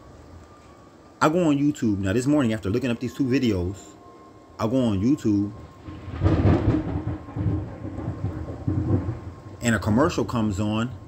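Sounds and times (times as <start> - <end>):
rain-like hiss: 0.0 - 11.0
thunder rumbling: 4.6 - 11.0.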